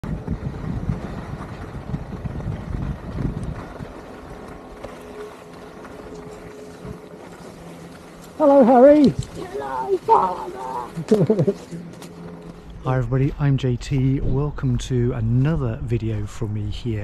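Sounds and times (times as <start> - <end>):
wind buffeting microphone: 0.0 - 7.1.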